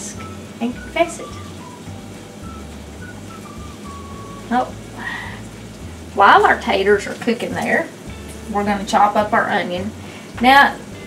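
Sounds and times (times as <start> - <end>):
potatoes sizzling in a skillet: 0.0 - 11.0
soft background music: 0.0 - 11.0.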